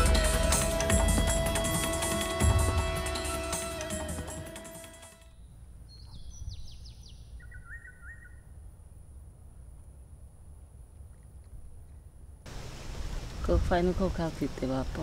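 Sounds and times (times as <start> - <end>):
birds chirping: 5.3 - 8.5.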